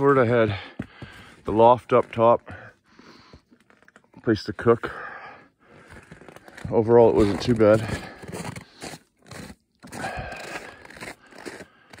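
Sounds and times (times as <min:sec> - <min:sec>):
footsteps crunching in snow: 0:05.8 - 0:12.0.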